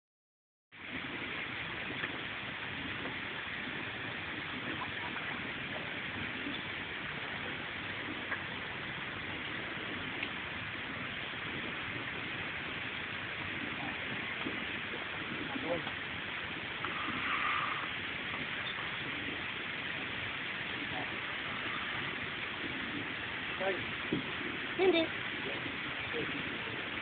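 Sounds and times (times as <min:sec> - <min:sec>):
outdoor background hiss: 0:00.8 - 0:27.0.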